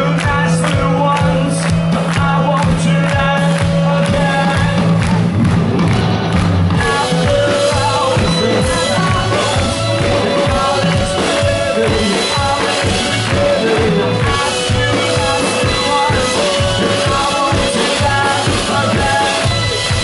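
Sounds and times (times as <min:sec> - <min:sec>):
male lead vocal: 0:00.0 - 0:05.6, 0:06.7 - 0:20.0
live rock band playing: 0:00.0 - 0:20.0.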